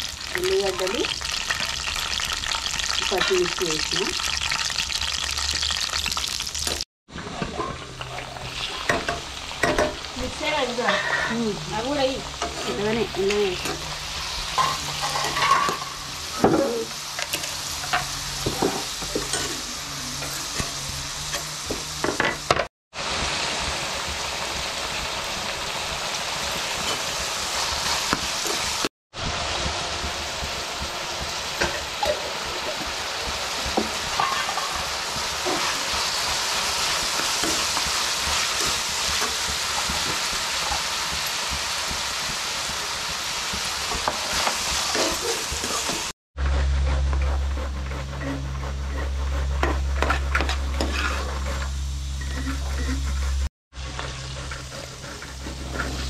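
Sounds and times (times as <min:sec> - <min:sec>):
vegetables sizzling in hot oil: 0:00.0 - 0:46.2, 0:49.6 - 0:56.0
steel spoon scraping a pan: 0:07.2 - 0:22.3, 0:26.7 - 0:28.8, 0:30.5 - 0:40.9, 0:41.9 - 0:56.0.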